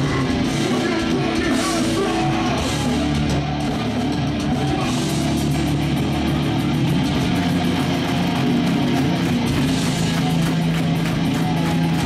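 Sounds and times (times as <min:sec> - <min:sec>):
loud electric guitars and bass: 0:00.0 - 0:12.0
metalcore band playing live: 0:00.0 - 0:12.0.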